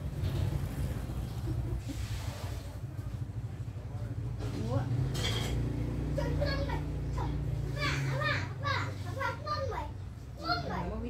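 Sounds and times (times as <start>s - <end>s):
young child talking and babbling: 6.0s - 11.0s.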